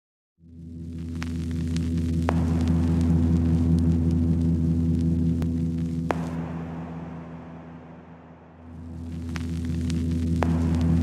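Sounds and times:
ambient electronic drone: 0:00.4 - 0:11.0.

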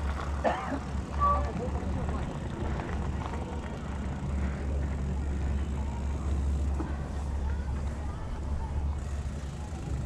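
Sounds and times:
bike rolling over brick pavers: 0:00.0 - 0:10.0.

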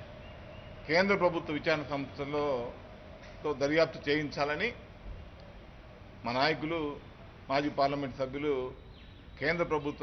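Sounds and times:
man speaking: 0:00.9 - 0:02.8, 0:03.4 - 0:04.8, 0:06.2 - 0:08.8, 0:09.4 - 0:10.0.

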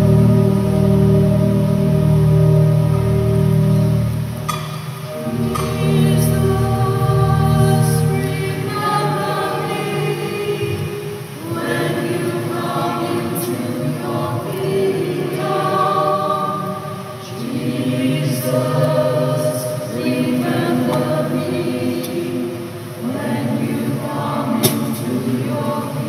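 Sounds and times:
choir singing a hymn: 0:00.0 - 0:26.0.

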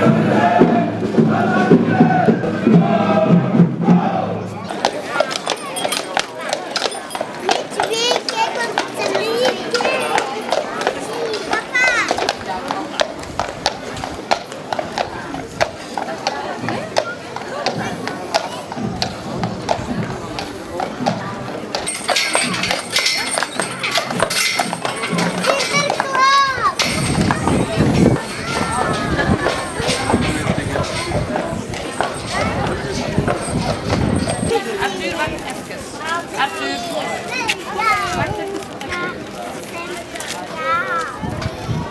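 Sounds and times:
children chattering and calling out: 0:00.0 - 0:41.9
people talking: 0:00.0 - 0:41.9
horse hooves clip-clopping on pavement: 0:04.7 - 0:41.9.

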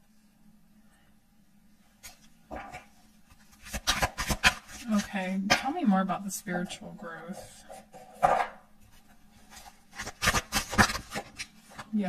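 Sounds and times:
cards being shuffled: 0:02.0 - 0:05.1, 0:08.9 - 0:12.0
card snaps and rubs: 0:03.5 - 0:04.8, 0:09.5 - 0:11.9.

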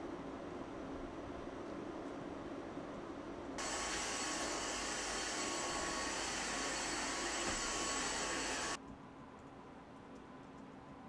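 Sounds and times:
appliance motor whirring: 0:03.6 - 0:08.8.

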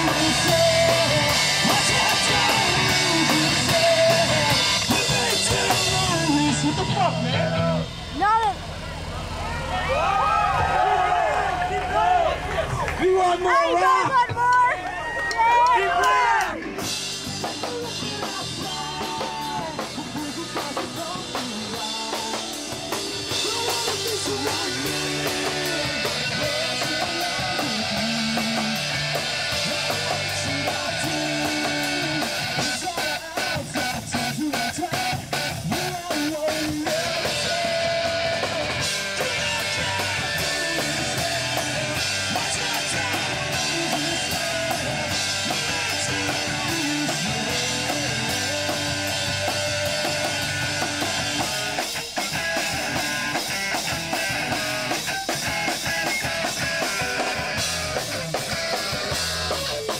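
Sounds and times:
drum kit beat: 0:00.0 - 0:08.6, 0:15.6 - 0:59.9
electric guitar: 0:00.0 - 0:13.0, 0:16.3 - 0:59.9
rock music: 0:00.0 - 0:59.9.

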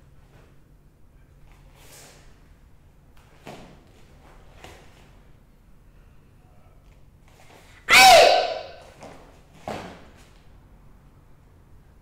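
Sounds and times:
person shouting sharply: 0:07.9 - 0:08.9.

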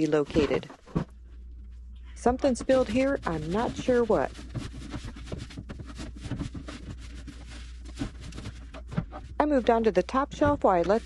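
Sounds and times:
cloth scrubbing plastic tray: 0:02.2 - 0:11.0.

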